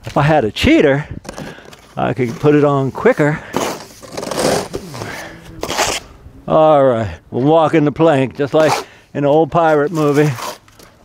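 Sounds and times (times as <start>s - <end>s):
trowel scraping wet stucco: 2.4s - 6.1s, 9.5s - 10.9s.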